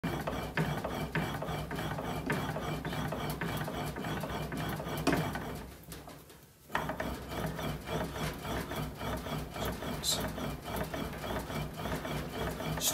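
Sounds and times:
bat-rolling machine grinding: 0:00.0 - 0:05.7, 0:06.7 - 0:12.9.

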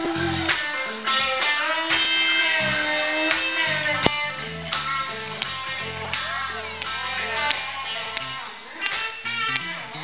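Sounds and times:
electric guitar bending notes: 0:00.0 - 0:10.0.

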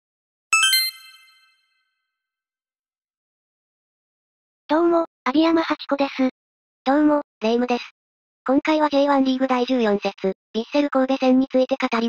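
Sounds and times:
sparkling bell-like chime: 0:00.6 - 0:01.6.

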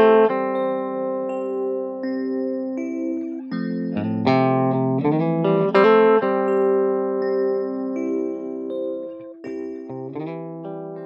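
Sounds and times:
plucked string chord ringing: 0:00.0 - 0:11.0.

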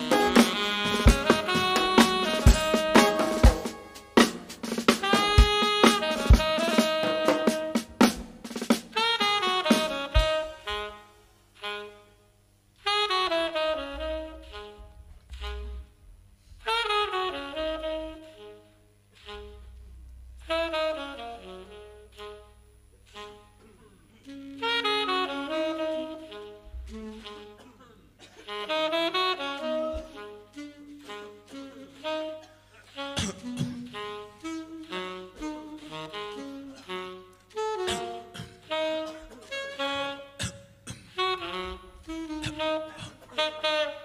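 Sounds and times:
saxophones playing held notes: 0:00.0 - 0:44.0.

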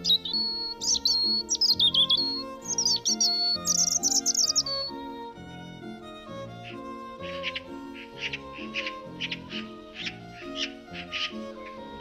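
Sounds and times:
gentle instrumental music: 0:00.0 - 0:12.0
songbird singing: 0:00.0 - 0:12.0.

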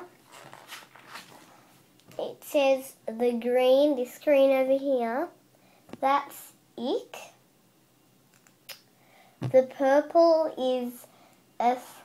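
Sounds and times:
soft handling rustles and scrapes: 0:00.1 - 0:02.2.

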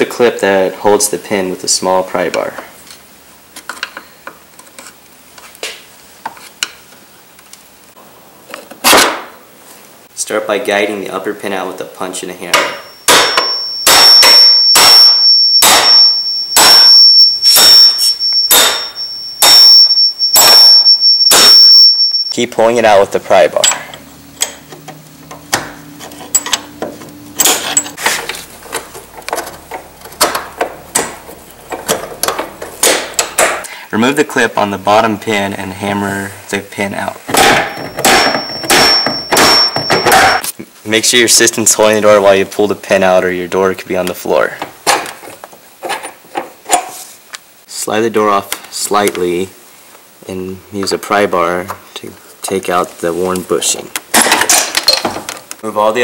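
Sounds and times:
hammer striking steel punch: 0:12.5 - 0:22.3, 0:27.4 - 0:28.0, 0:32.3 - 0:33.6, 0:37.3 - 0:40.4
steady high-pitched tone: 0:12.6 - 0:28.0, 0:37.6 - 0:40.4.

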